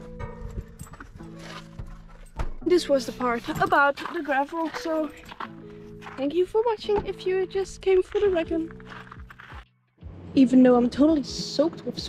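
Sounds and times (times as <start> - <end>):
background music with low notes: 0.0 - 12.0.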